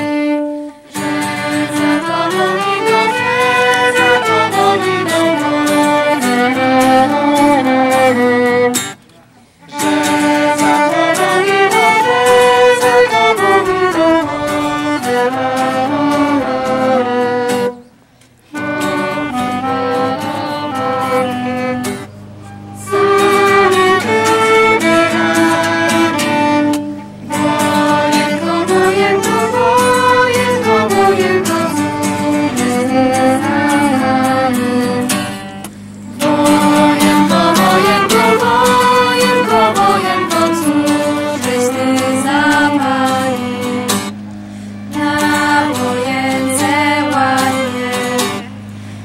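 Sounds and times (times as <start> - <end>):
young voices singing: 0.0 - 8.8, 9.6 - 17.8, 18.8 - 49.0
clarinet: 0.0 - 49.0
violin: 0.0 - 49.0.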